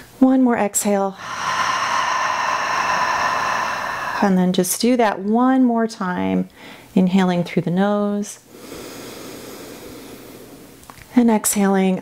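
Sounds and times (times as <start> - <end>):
woman sighing: 1.2 - 4.5.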